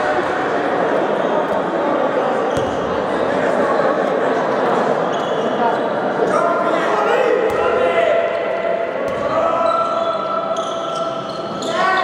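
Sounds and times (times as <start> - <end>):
players' voices echoing: 0.0 - 12.0
ball bouncing on hall floor: 2.5 - 2.9.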